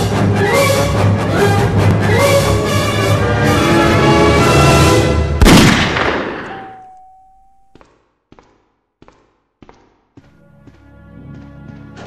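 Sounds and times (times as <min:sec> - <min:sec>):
dramatic film score: 0:00.0 - 0:07.0, 0:09.8 - 0:12.0
loud pistol shot: 0:05.4 - 0:06.6.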